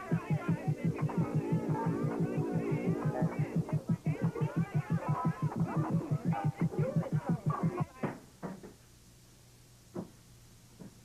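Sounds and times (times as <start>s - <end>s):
low throbbing electronic pulse: 0.0s - 7.0s.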